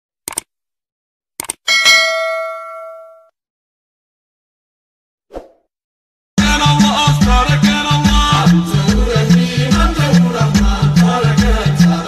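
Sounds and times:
notification bell ringing: 1.7s - 3.3s.

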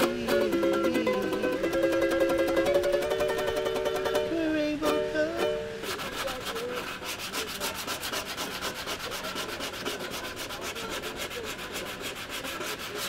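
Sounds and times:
wax rubbing on surfboard: 5.8s - 13.0s.

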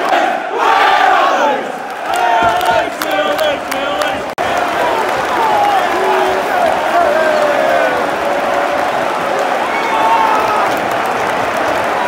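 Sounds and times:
football crowd chanting: 0.0s - 12.0s.

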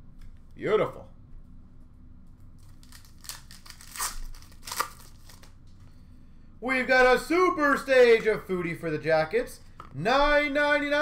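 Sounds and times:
cards and wrappers crinkling: 2.6s - 5.5s.

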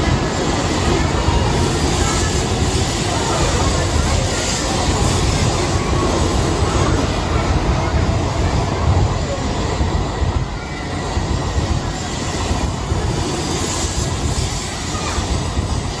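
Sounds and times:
train passing with heavy rumble: 0.0s - 16.0s.

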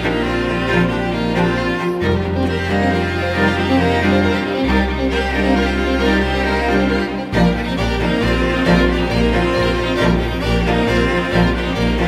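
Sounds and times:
bowed string ensemble: 0.0s - 12.0s.

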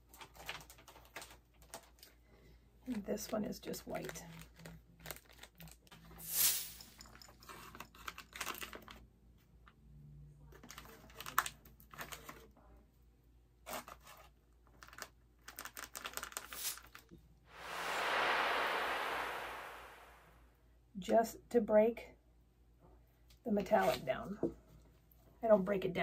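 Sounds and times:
hiss: 6.3s - 6.9s, 17.5s - 20.3s.

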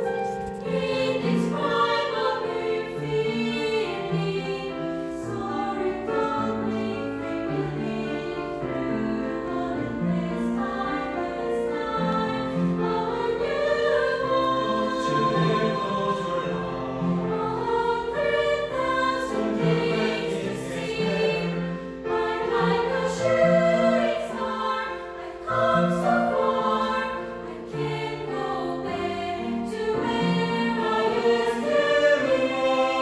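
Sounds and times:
mixed choir singing: 0.0s - 33.0s.

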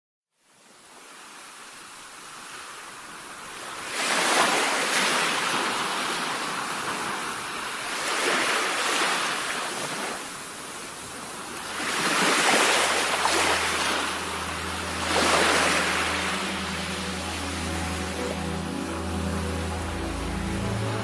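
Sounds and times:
ocean waves washing onto shore: 0.6s - 21.0s.

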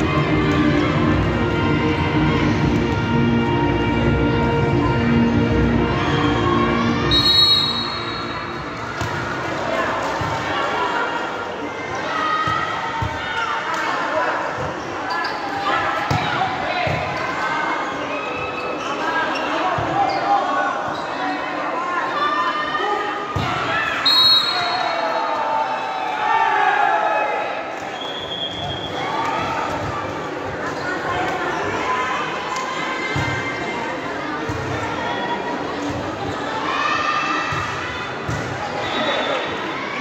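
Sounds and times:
spectators chattering and shouting: 0.0s - 40.0s
referee's whistle: 7.1s - 8.5s, 24.0s - 25.1s, 27.9s - 29.0s, 38.8s - 39.5s.

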